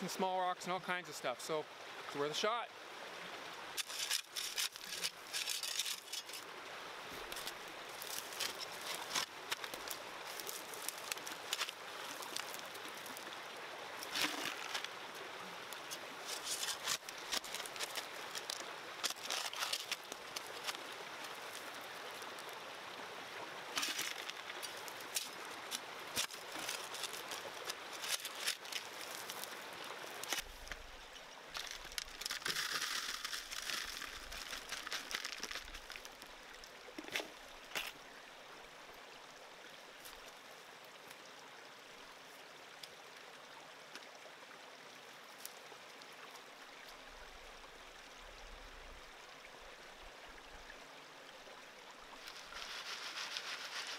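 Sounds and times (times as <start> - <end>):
creek running: 0.0 - 53.9
hand tool digging rocks and gravel: 3.8 - 6.4, 7.2 - 12.9, 14.0 - 14.9, 15.8 - 21.0, 23.8 - 29.6, 30.2 - 30.5, 31.6 - 36.2, 52.3 - 53.9.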